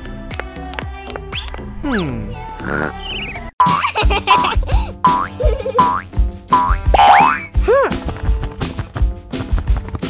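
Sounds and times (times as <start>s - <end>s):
cartoon background music: 1.3s - 10.0s
sliding-pitch sound effects: 6.6s - 7.5s
warbling sound effect: 6.6s - 7.5s.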